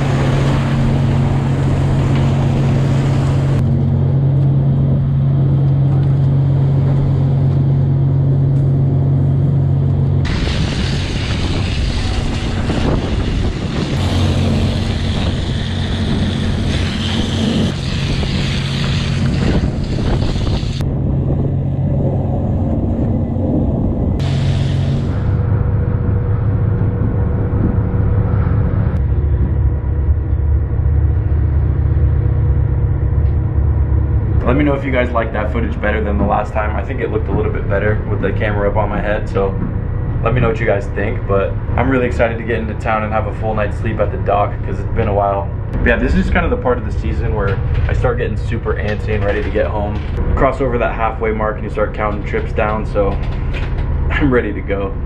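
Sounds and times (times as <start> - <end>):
boat engines droning: 0.0 - 55.0
deck machinery: 0.0 - 55.0
hose spraying water: 10.3 - 20.8, 24.2 - 25.3.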